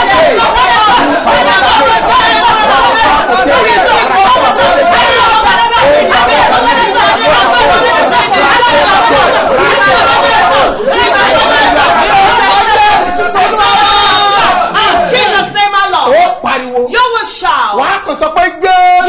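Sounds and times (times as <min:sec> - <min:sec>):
man praying aloud: 0:00.0 - 0:19.0
woman praying aloud: 0:00.0 - 0:19.0.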